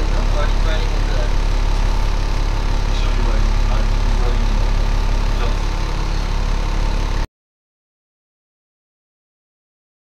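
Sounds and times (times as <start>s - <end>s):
diesel engine idling: 0.0s - 7.3s.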